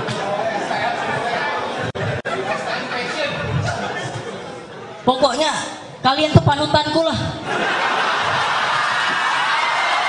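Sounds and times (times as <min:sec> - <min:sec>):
audience laughing and chattering: 0:00.0 - 0:05.0, 0:07.4 - 0:09.8.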